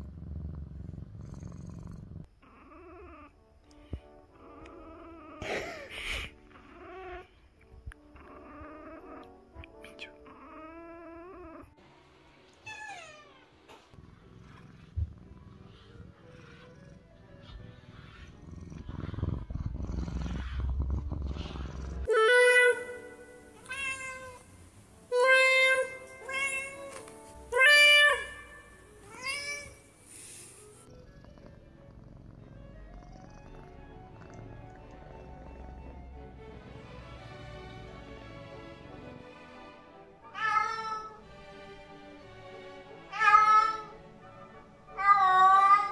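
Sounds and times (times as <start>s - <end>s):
cat purring: 0.0s - 3.4s, 13.7s - 26.0s, 26.7s - 39.2s
faint background music: 0.0s - 45.9s.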